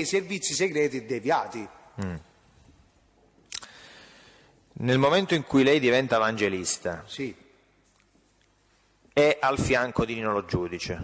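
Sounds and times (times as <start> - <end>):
man murmuring mm: 2.0 - 2.2.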